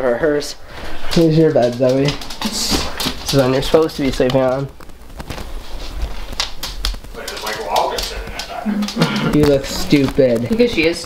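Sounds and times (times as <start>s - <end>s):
man's voice: 7.1s - 10.5s.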